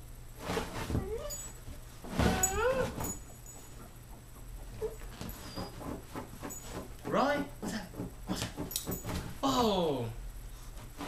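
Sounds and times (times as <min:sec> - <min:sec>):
scratching and rustling on fabric: 0:00.3 - 0:03.3.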